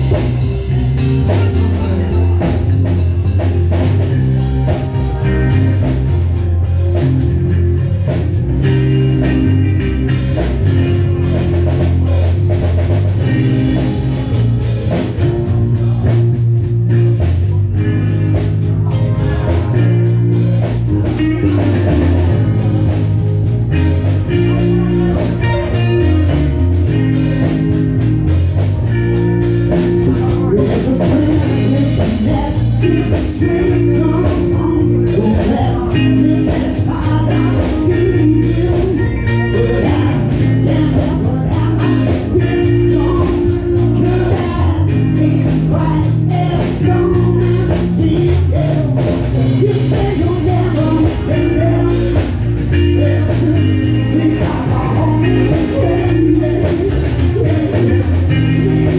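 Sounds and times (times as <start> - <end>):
amplified electric guitar: 0.0 - 58.9
drum kit beat: 0.0 - 58.9
live rock band playing: 0.0 - 58.9.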